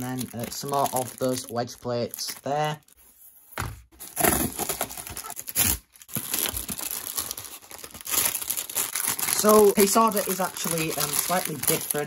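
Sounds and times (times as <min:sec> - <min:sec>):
cardboard package tearing: 0:00.0 - 0:02.8, 0:04.0 - 0:12.0.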